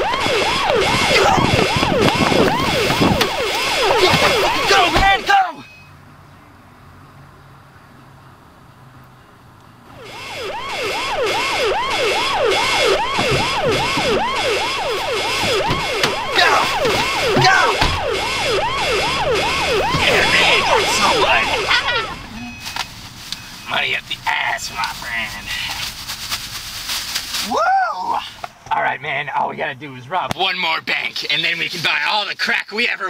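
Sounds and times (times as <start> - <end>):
emergency siren yelping: 0.0 - 5.7, 9.9 - 23.8.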